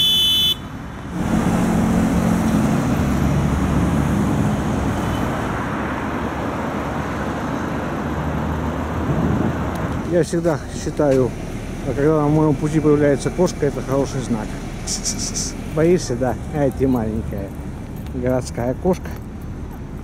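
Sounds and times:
city traffic rumble: 0:00.0 - 0:20.0.

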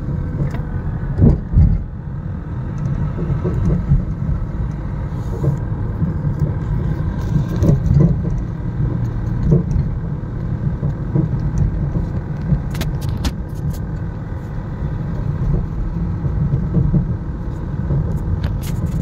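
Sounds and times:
car engine and road noise: 0:00.0 - 0:19.0.

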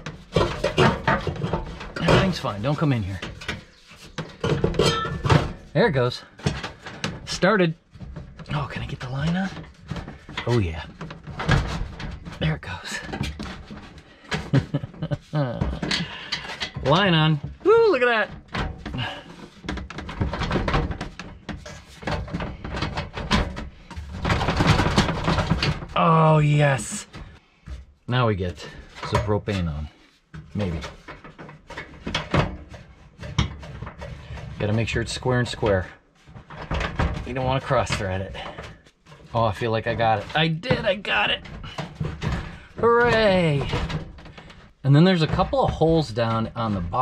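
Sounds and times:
metal housing clicking and scraping: 0:00.0 - 0:12.4, 0:13.0 - 0:17.4
man speaking: 0:02.0 - 0:03.3, 0:05.8 - 0:06.3, 0:08.5 - 0:09.6, 0:10.4 - 0:10.9, 0:16.8 - 0:18.3, 0:26.0 - 0:27.2, 0:28.1 - 0:29.9, 0:30.5 - 0:30.9, 0:34.6 - 0:35.9, 0:39.3 - 0:41.4, 0:42.8 - 0:43.9, 0:44.8 - 0:47.0.

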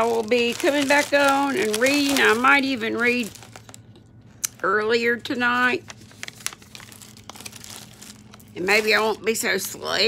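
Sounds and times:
rustling and crinkling handling noise: 0:00.0 - 0:04.4, 0:05.1 - 0:09.9.

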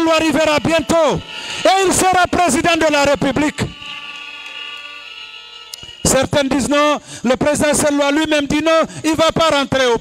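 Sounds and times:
high-pitched ringing tones: 0:00.0 - 0:10.0.

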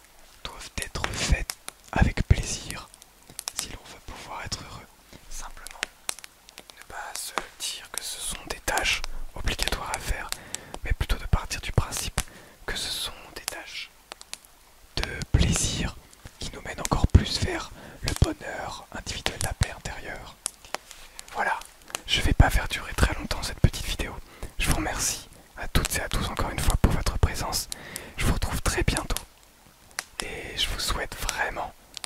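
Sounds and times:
man whispering: 0:00.3 - 0:05.9, 0:06.7 - 0:13.9, 0:15.0 - 0:29.3, 0:30.2 - 0:31.8.

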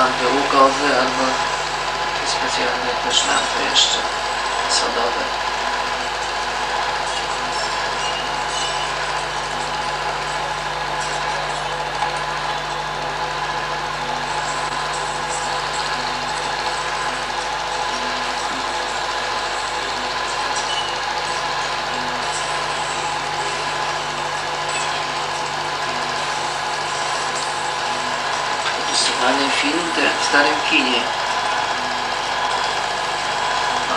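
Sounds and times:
film projector whirring: 0:00.0 - 0:33.9.

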